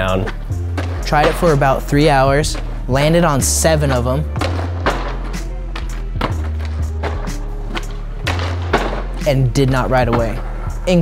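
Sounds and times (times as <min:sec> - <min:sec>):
music with bass line: 0:00.0 - 0:11.0
skateboard sliding on concrete: 0:03.9 - 0:09.2.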